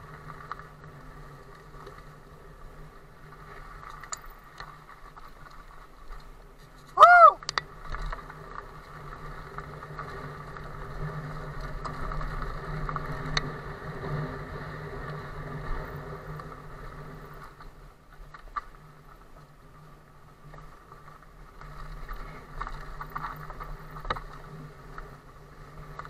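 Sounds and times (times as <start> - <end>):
mountain bike rolling on dirt: 0.0 - 26.0.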